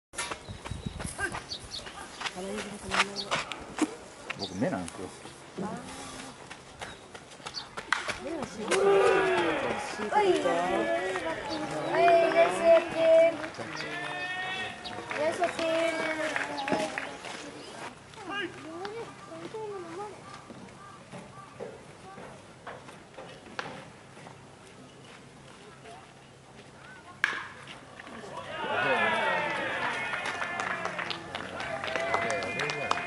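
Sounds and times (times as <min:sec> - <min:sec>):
distant voices calling out: 0:07.6 - 0:22.6
people shouting: 0:08.6 - 0:13.1, 0:14.0 - 0:15.2, 0:28.4 - 0:31.0
long drawn-out calls: 0:08.8 - 0:15.3.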